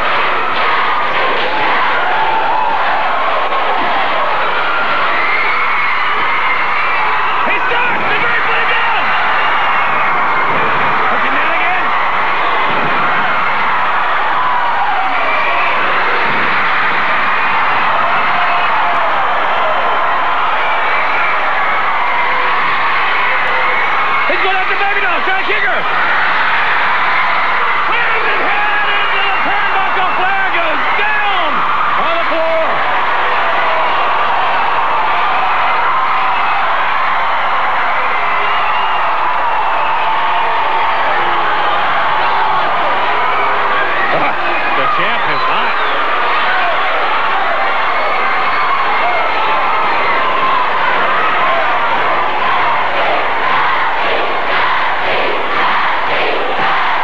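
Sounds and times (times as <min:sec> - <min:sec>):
crowd cheering and yelling: 0:00.0 - 0:57.0.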